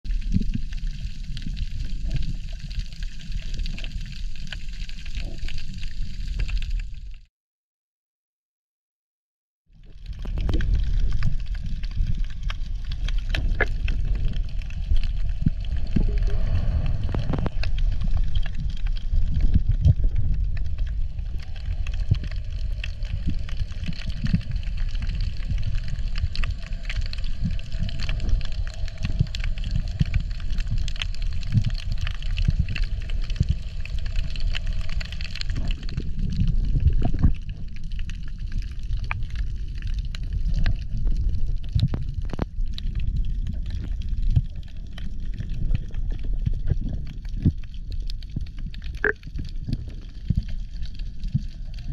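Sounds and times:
scattered clicks and crackles: 0.1 - 7.3, 9.8 - 51.9
underwater rumble of moving water: 0.1 - 7.3, 9.7 - 51.9.

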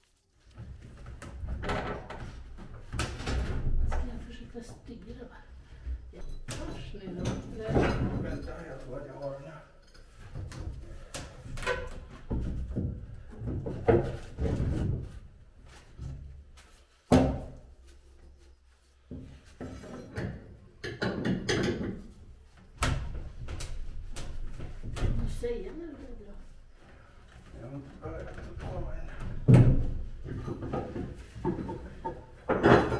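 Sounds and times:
wood and metal knocks and thuds: 6.6 - 8.5, 11.7 - 15.3, 17.1 - 17.6, 19.1 - 22.2, 28.2 - 32.9.

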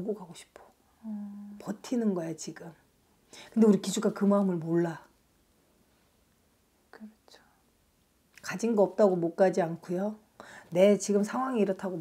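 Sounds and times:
breathy vocal sounds: 1.0 - 1.6.

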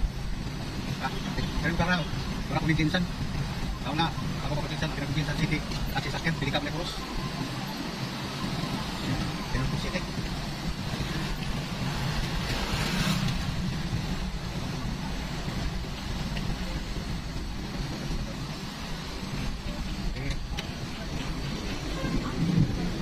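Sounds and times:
car engine and road noise: 0.0 - 23.0.

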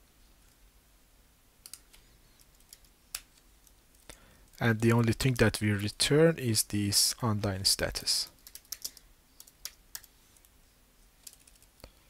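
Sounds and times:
computer keyboard keystrokes: 8.4 - 10.5, 11.2 - 11.7.

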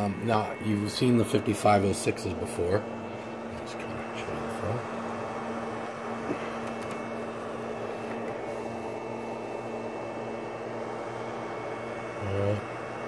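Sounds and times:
machine hum with fan hiss: 0.0 - 13.0.

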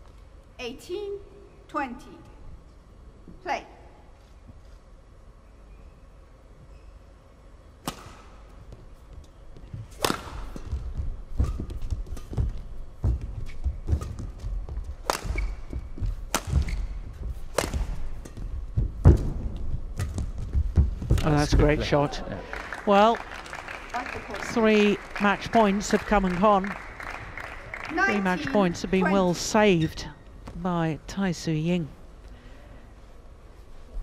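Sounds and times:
racket hitting shuttlecock: 7.8 - 8.4, 9.9 - 12.4, 15.0 - 19.3.

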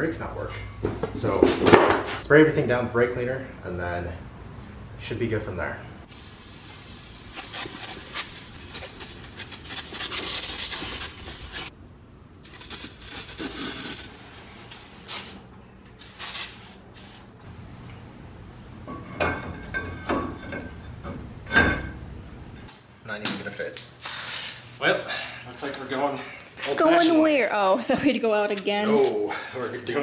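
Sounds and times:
hissing and scrubbing: 6.1 - 11.7, 12.4 - 17.4.

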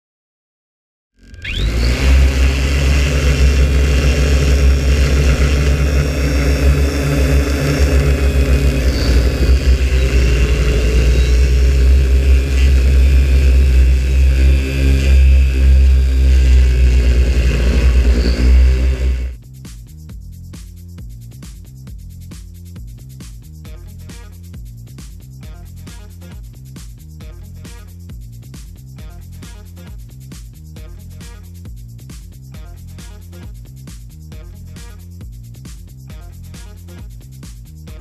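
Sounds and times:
drone propellers droning: 1.2 - 19.4.

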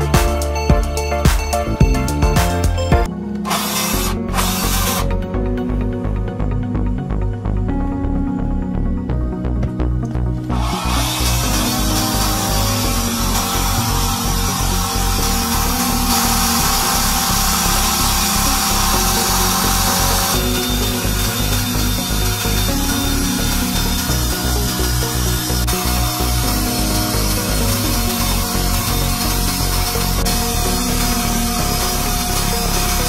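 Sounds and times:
background music with steady beat: 0.0 - 33.0.

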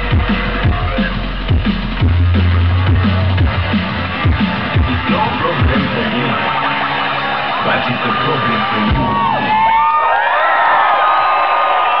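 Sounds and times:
electronic music over loudspeakers: 0.0 - 12.0
crowd cheering and whooping: 2.0 - 12.0.

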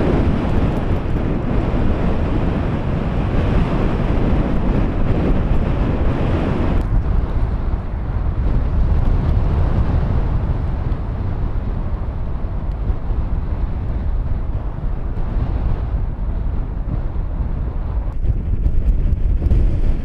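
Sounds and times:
wind buffeting microphone: 0.0 - 20.0.

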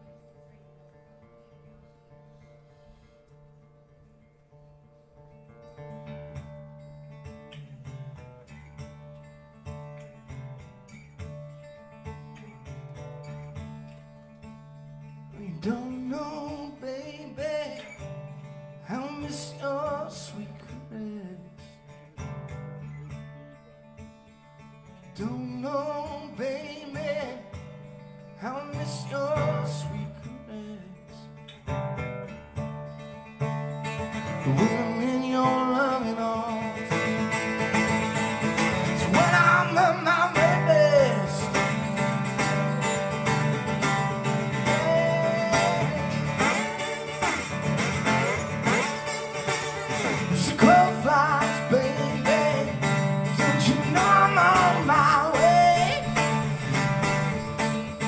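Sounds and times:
resonator guitar playing: 30.6 - 58.0.

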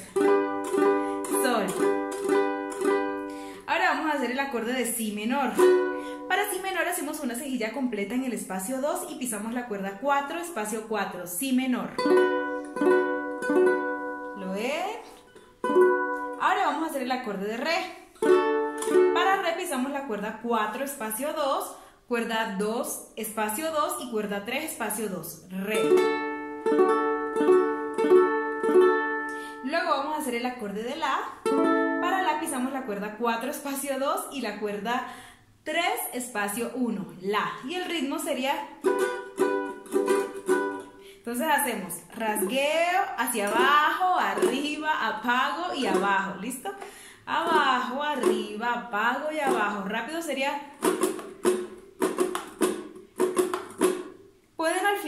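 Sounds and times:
ukulele strums ringing: 0.0 - 3.5, 12.0 - 14.4, 15.3 - 16.4, 18.2 - 19.2, 25.8 - 29.6, 31.4 - 32.5, 38.8 - 41.0, 50.8 - 54.3.

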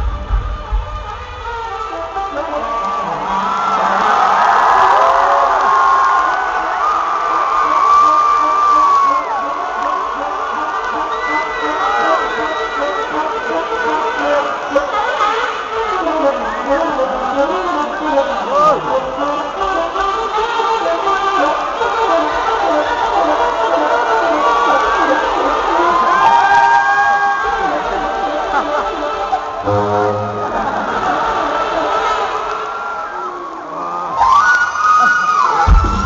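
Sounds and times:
saxophone playing: 0.0 - 26.2, 27.5 - 32.8
crowd screaming and cheering: 0.0 - 36.0.

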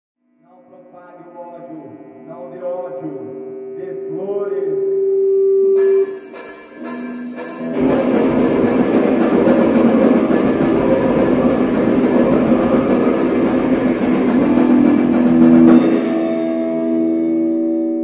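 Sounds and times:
distorted guitar and bass: 1.8 - 18.0
pounding drums: 5.8 - 17.2.

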